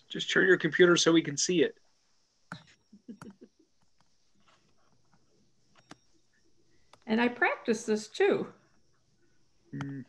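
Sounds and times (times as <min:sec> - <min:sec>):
faint chuckling: 0:02.6 - 0:03.8.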